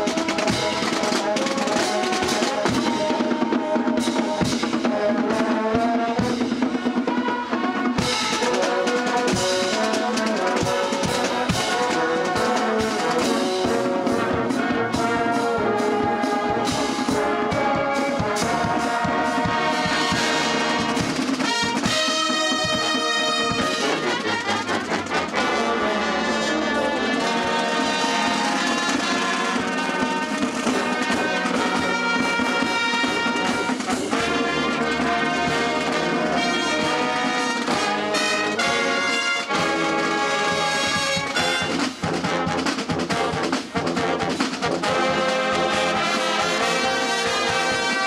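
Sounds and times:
brass band playing chords: 0.0s - 48.0s.

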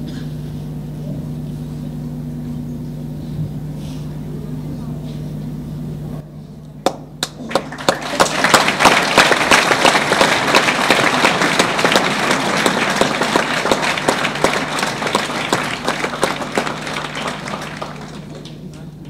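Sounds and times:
audience applauding: 7.2s - 19.0s.

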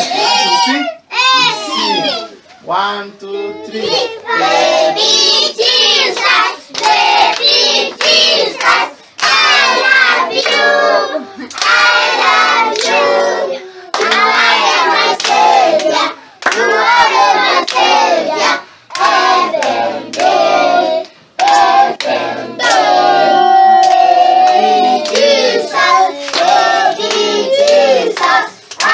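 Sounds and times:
children singing: 3.4s - 28.9s
hand clapping: 6.2s - 9.6s, 11.4s - 11.9s, 13.9s - 14.4s, 15.2s - 16.8s, 21.4s - 22.9s, 23.8s - 25.4s, 26.2s - 28.9s.

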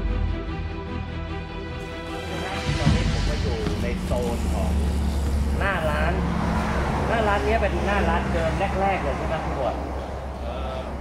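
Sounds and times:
motor vehicles rumbling: 1.8s - 11.0s
man's voice: 2.3s - 6.0s.

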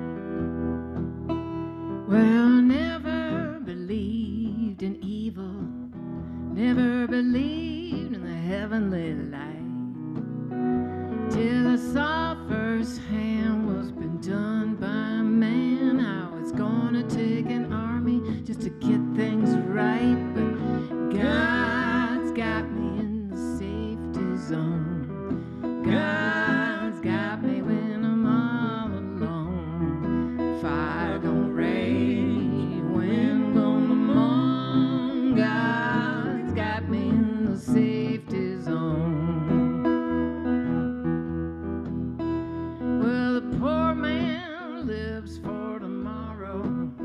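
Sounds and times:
acoustic guitar: 0.0s - 47.0s
woman singing folk song: 0.0s - 47.0s.

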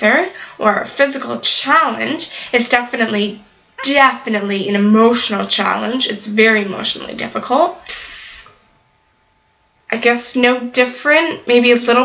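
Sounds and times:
woman speaking: 0.0s - 8.6s, 9.9s - 12.0s
woman's breathy exhale: 7.9s - 8.6s.

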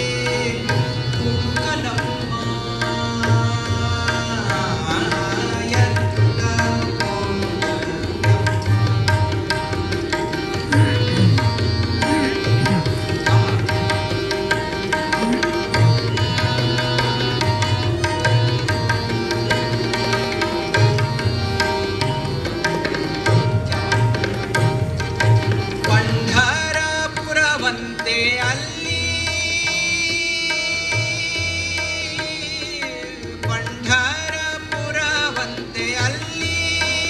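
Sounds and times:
harmonium held notes: 0.0s - 37.0s
tabla strokes: 0.0s - 37.0s.

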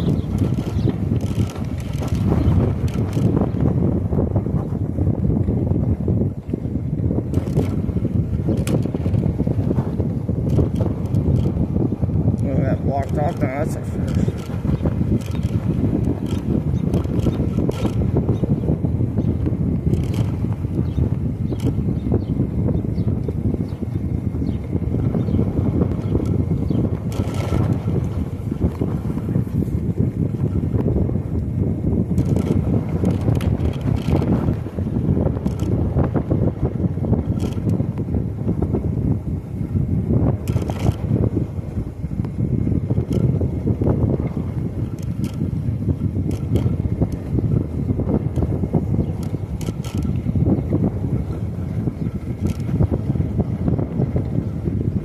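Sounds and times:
light clicks and rattles: 0.0s - 3.4s, 12.4s - 14.6s, 19.9s - 20.4s, 46.2s - 47.2s, 49.2s - 50.3s, 52.4s - 52.8s
wind buffeting microphone: 0.0s - 55.0s.

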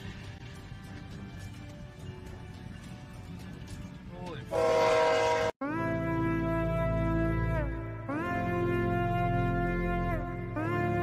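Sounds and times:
locomotive air horn: 4.5s - 11.0s.

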